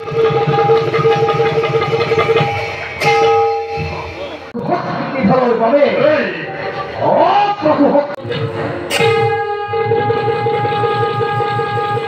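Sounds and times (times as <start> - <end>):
long wind instrument note: 8.8 - 12.0.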